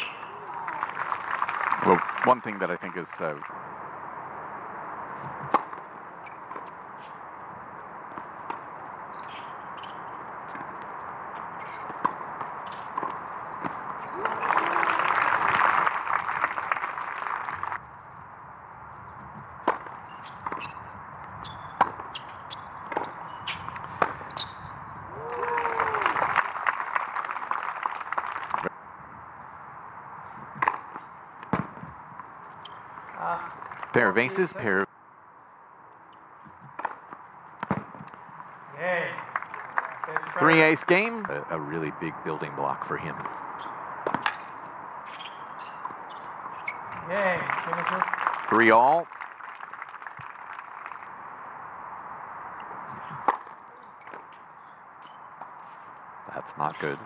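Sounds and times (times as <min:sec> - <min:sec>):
crowd applause: 0:00.0 - 0:03.2, 0:14.1 - 0:17.8, 0:25.2 - 0:28.7, 0:39.1 - 0:41.3, 0:47.1 - 0:51.1
steady background noise: 0:00.0 - 0:57.0
tennis balls struck by rackets: 0:05.2 - 0:07.1, 0:19.6 - 0:20.6, 0:22.8 - 0:24.5, 0:30.5 - 0:32.3, 0:36.5 - 0:38.4, 0:43.2 - 0:44.7, 0:52.6 - 0:54.4
person shouting: 0:25.1 - 0:26.1.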